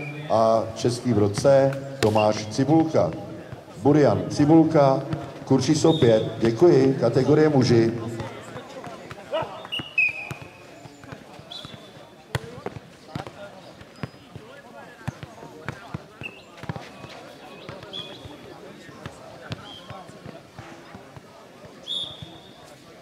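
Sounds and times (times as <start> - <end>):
ball kicked and bouncing: 5.0 - 6.6, 8.1 - 18.4.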